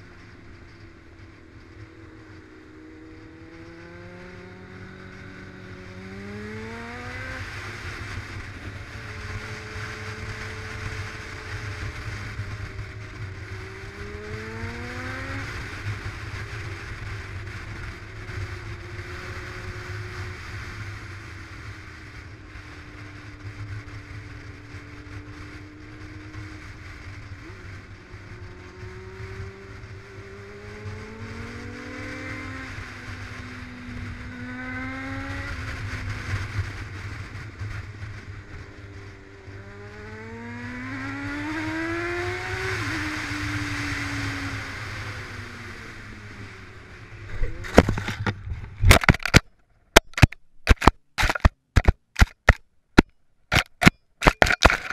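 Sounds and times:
wind rumble on microphone: 0.0s - 49.4s
motorcycle engine accelerating: 0.0s - 54.9s.

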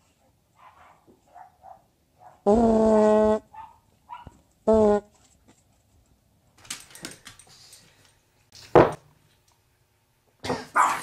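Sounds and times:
buzzy fart noise: 2.5s - 3.5s, 4.7s - 5.1s.

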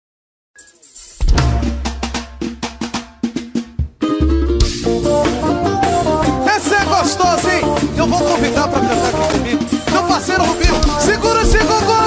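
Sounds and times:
fast drum and snare strokes: 0.6s - 6.0s, 6.6s - 12.0s
full band playing: 0.6s - 12.0s.

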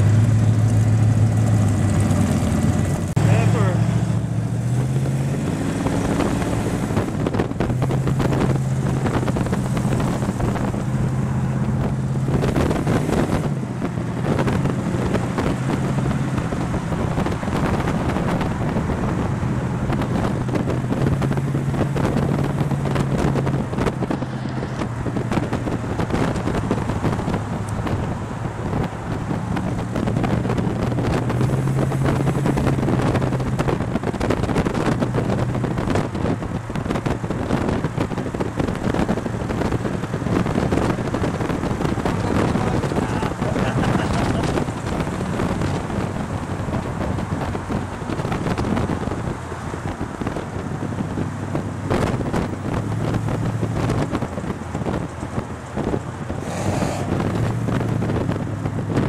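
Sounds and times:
car engine running: 0.0s - 59.0s
wind buffeting microphone: 0.0s - 59.0s.

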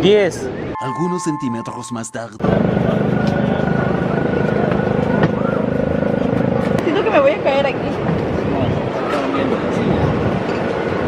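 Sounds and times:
engine running steadily: 2.4s - 8.4s.

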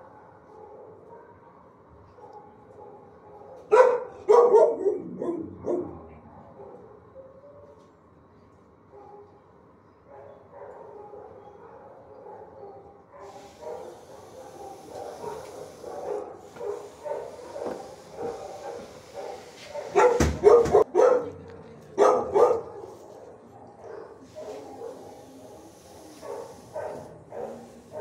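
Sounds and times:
loud close dog barks: 0.0s - 6.9s, 10.1s - 21.4s, 22.0s - 28.0s
chorus of dogs barking: 0.0s - 7.9s, 8.9s - 9.4s, 10.0s - 28.0s.

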